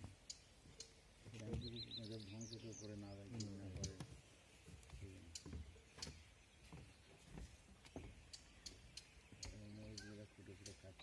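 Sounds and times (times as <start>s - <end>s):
bird chirping: 0.0s - 11.0s
people talking: 1.3s - 4.1s, 4.9s - 5.6s, 9.4s - 11.0s.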